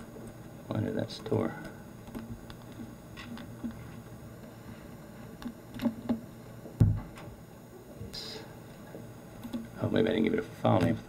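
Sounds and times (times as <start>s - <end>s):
low steady hum: 0.0s - 11.0s
dull thump: 6.8s - 7.2s.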